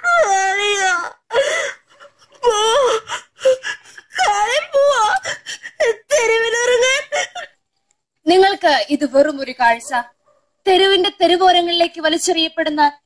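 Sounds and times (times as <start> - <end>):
girl wailing and sobbing: 0.0 - 7.6.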